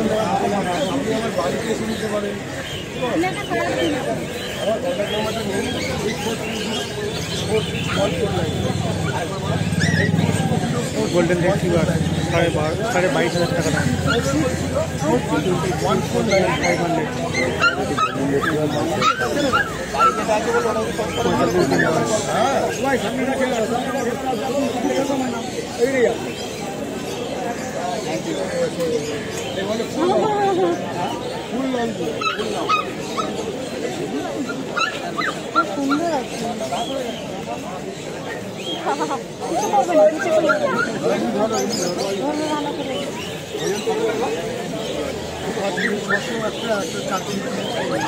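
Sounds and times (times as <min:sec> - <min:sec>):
background chatter: 0:00.0 - 0:48.0
people talking: 0:00.0 - 0:48.0
puppies yipping and whimpering: 0:04.6 - 0:10.5, 0:13.8 - 0:14.6, 0:16.0 - 0:22.5, 0:32.0 - 0:36.5, 0:38.2 - 0:42.5, 0:45.5 - 0:48.0.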